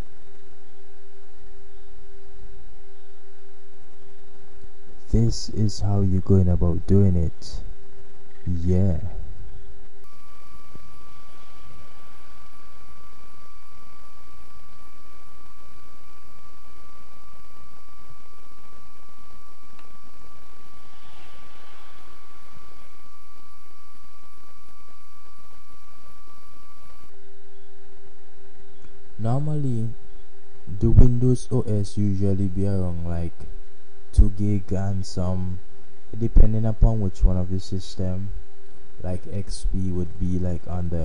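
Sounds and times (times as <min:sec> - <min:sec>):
low hum and hiss: 0:00.0 - 0:41.0
high-pitched whine: 0:03.8 - 0:27.7.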